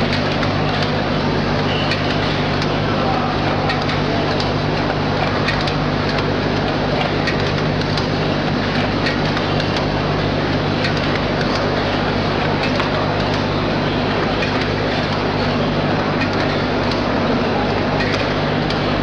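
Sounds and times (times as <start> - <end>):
machine low hum: 0.0 - 19.0
mechanical clatter: 0.0 - 19.0.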